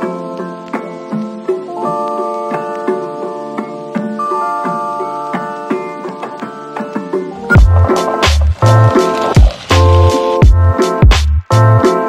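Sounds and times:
sustained keyboard chords: 1.7 - 12.0
heavy kick drum: 7.5 - 9.6, 10.4 - 11.4
deep bass: 7.5 - 11.8.

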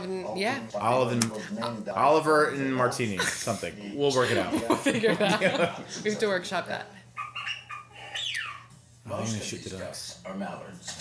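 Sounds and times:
duck calls: 7.2 - 8.7.

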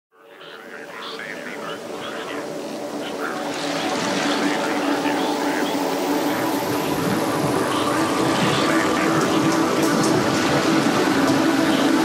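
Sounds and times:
held drone tones: 0.2 - 12.0
hiss-like synth wash: 0.8 - 12.0.

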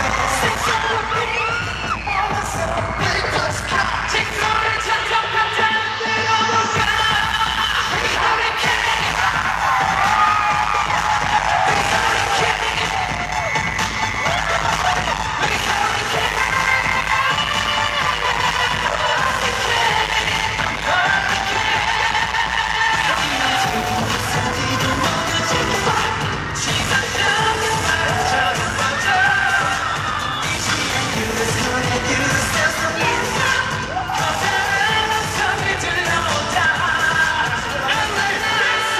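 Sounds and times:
loud amplified pop music with singing: 0.0 - 38.9.

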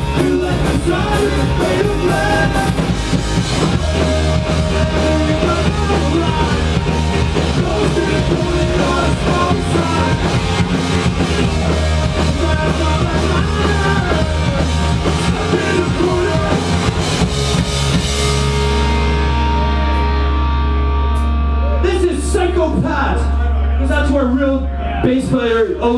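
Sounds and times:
drums and cymbals: 0.0 - 18.9
live rock band playing: 0.0 - 25.9
sustained guitar and bass notes: 0.0 - 25.9.

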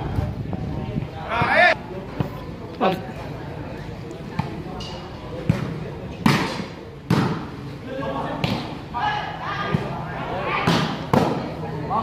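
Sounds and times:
spectators chattering: 0.0 - 12.0
volleyball slaps: 5.4 - 7.5, 8.4 - 8.8, 10.6 - 11.5.

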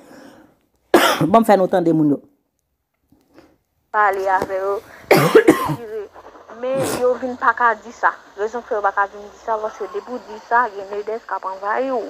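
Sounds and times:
person coughing: 1.0 - 1.3, 5.1 - 5.9
person speaking: 4.0 - 7.4.

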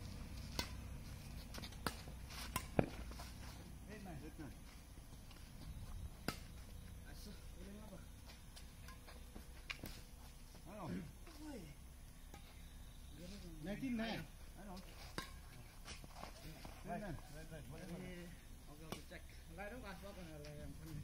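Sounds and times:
badminton racket hitting shuttlecock: 0.4 - 0.9, 1.6 - 3.0.

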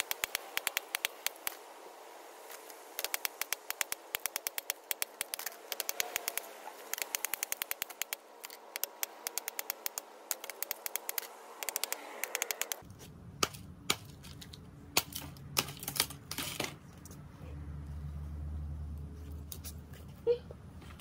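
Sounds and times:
bamboo cracking under knife: 2.4 - 16.3.

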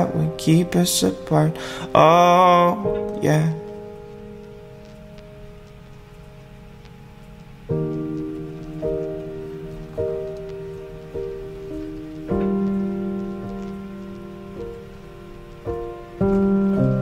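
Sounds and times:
piano chords: 0.0 - 17.0
soft hiss with crackles: 0.0 - 17.0.

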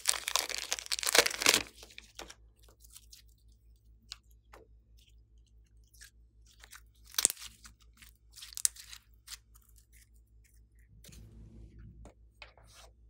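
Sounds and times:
slime clicking and crackling: 0.0 - 1.8, 5.9 - 10.0.

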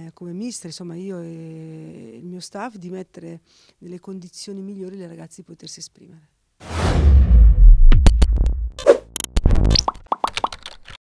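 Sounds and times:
electronic pops and clicks: 7.9 - 10.7.

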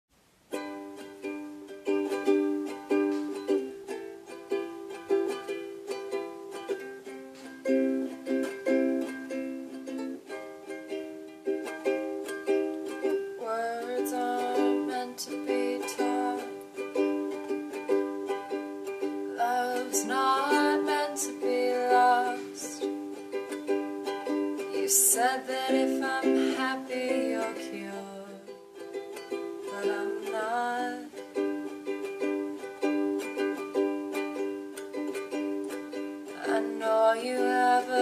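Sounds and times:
ukulele strumming chords: 0.5 - 38.0
woman singing: 13.4 - 17.4, 19.3 - 22.9, 24.6 - 28.6, 29.6 - 31.2, 36.2 - 38.0.

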